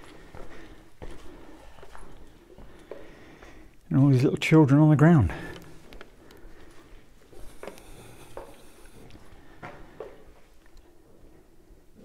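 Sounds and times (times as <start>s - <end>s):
footsteps on cave floor: 0.0s - 3.6s, 5.3s - 11.3s.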